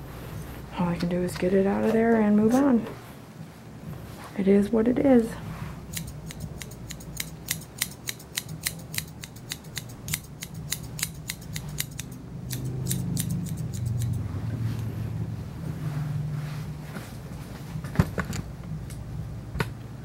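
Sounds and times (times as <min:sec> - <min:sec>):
grooming shears snipping hair: 0:05.9 - 0:14.9
low hum: 0:09.4 - 0:20.0.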